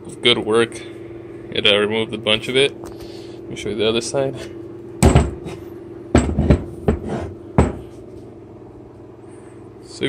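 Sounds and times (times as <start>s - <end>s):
metal part knocking on wooden bench: 6.2s - 7.9s.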